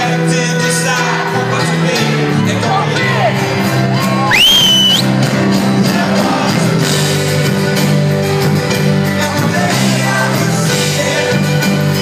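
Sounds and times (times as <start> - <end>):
acoustic guitar: 0.0 - 12.0
band playing live: 0.0 - 12.0.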